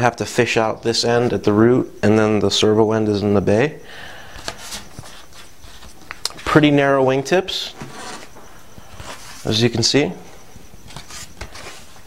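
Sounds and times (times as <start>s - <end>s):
faint handling sounds: 4.3s - 12.0s.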